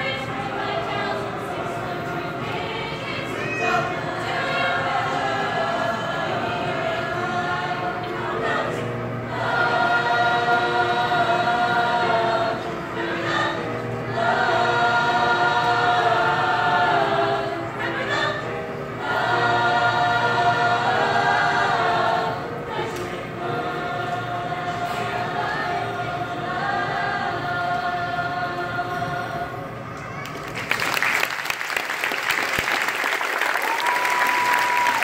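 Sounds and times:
choir singing in parts: 0:00.0 - 0:29.8.

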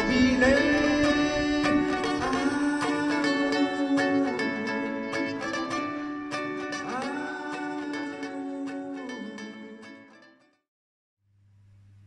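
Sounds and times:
plucked string instrument: 0:00.0 - 0:10.6.

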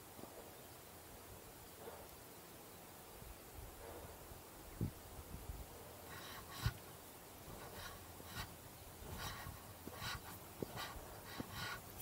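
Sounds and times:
person breathing hard: 0:07.5 - 0:12.0.

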